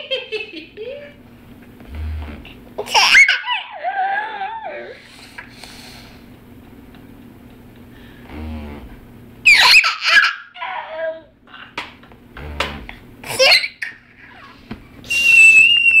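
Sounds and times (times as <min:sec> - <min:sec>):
electric massager buzzing: 0:00.1 - 0:03.0, 0:04.1 - 0:09.5, 0:12.0 - 0:15.3
toddler laughing and squealing: 0:02.8 - 0:05.0, 0:09.5 - 0:11.2.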